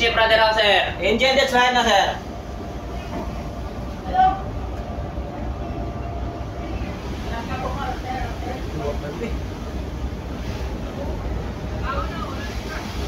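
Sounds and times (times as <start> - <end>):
ship engine rumbling: 0.0 - 13.0.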